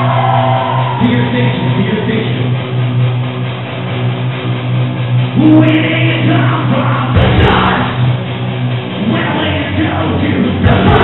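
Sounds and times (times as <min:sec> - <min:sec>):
electric guitars and bass droning: 0:00.0 - 0:11.0.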